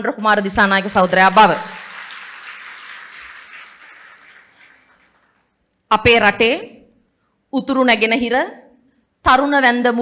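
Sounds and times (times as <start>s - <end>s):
audience applause: 0.4s - 5.5s.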